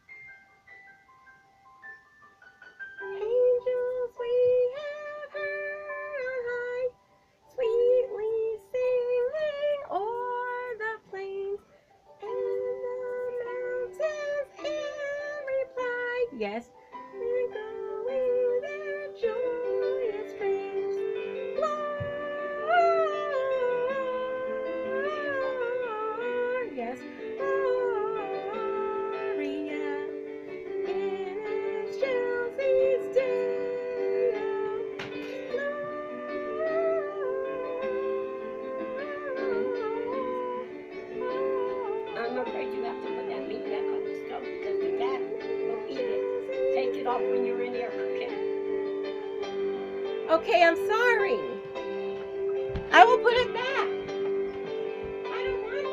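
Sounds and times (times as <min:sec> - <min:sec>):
instrumental backing music: 0:00.0 - 0:55.9
woman singing: 0:03.0 - 0:11.6, 0:12.2 - 0:51.8, 0:52.6 - 0:54.1.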